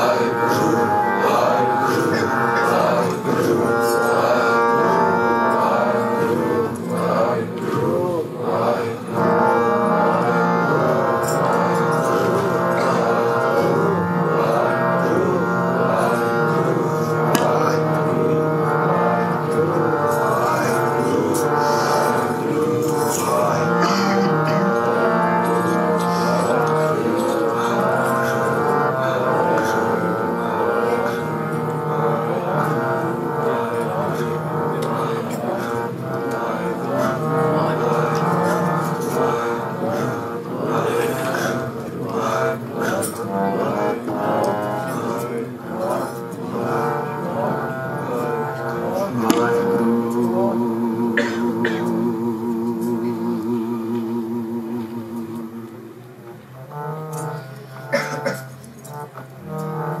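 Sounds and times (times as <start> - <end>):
group chanting: 0.0 - 60.0
harmonium drone: 0.0 - 60.0.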